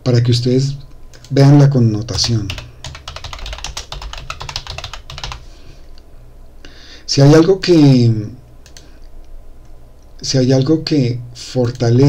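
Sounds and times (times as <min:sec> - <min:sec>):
computer keyboard typing: 0:02.1 - 0:05.5, 0:08.6 - 0:08.9.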